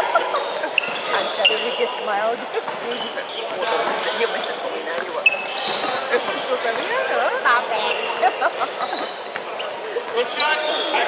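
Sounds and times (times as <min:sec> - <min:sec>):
background chatter: 0:00.0 - 0:11.0
sneaker squeaks: 0:00.2 - 0:11.0.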